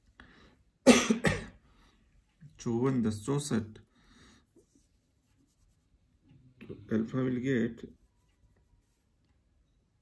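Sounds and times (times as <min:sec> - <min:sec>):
person coughing: 0:00.8 - 0:01.6
faint breath: 0:03.8 - 0:04.6.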